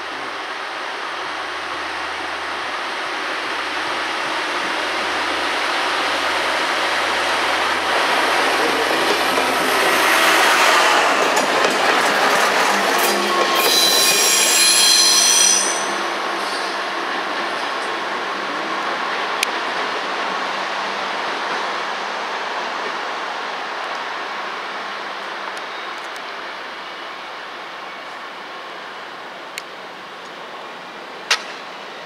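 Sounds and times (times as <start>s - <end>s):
diesel train engine and wheels: 0.0s - 32.0s
high squeal of train wheels: 8.7s - 17.8s, 25.6s - 28.4s.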